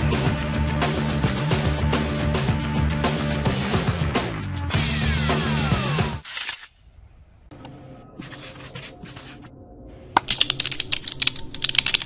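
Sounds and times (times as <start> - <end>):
keyboard typing clicks: 10.2 - 12.0.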